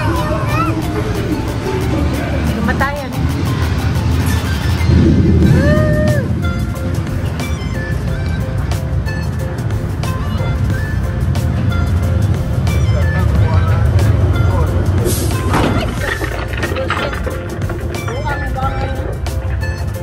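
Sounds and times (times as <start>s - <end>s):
ride car rumbling on track: 0.0s - 20.0s.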